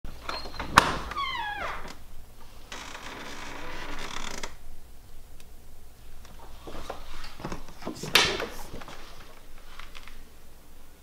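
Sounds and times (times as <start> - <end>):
door creaking: 0.1 - 2.0, 2.7 - 4.6
rustling hiss: 1.0 - 11.0.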